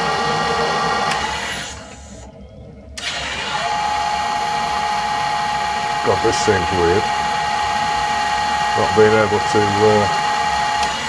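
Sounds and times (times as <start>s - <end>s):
metal lathe whining: 0.0s - 11.0s.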